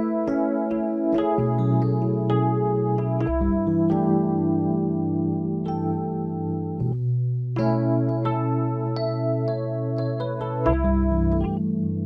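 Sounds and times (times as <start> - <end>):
digital keyboard playing chords: 0.0 - 12.0.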